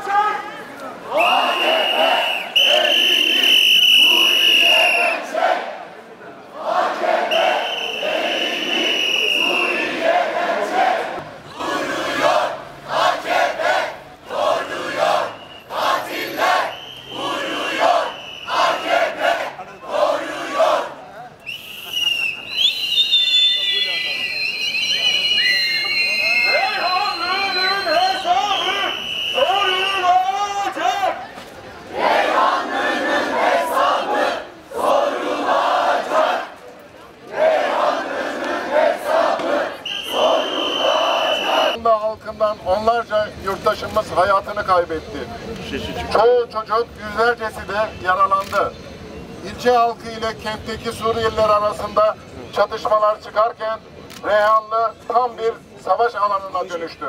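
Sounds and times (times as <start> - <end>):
crowd chanting slogans: 1.0 - 21.1, 31.8 - 41.8.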